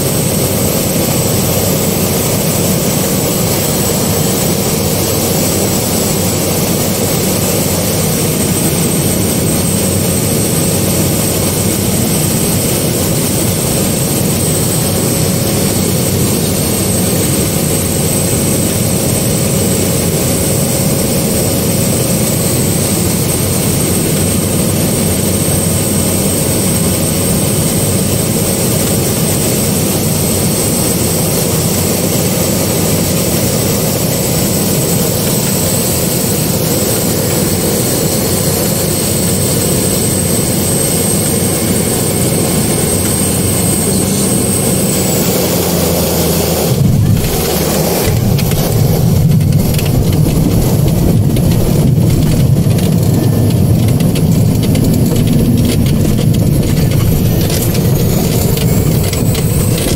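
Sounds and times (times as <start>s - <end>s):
propeller plane engine droning: 0.0s - 59.9s
thin high whine: 38.8s - 59.9s.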